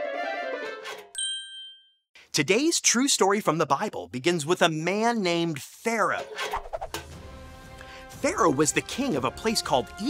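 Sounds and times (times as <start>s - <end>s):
bright bell-like ding: 1.2s - 2.0s.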